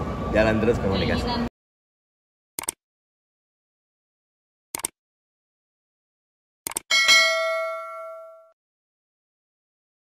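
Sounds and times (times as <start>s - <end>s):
bright bell ding: 6.9s - 8.6s.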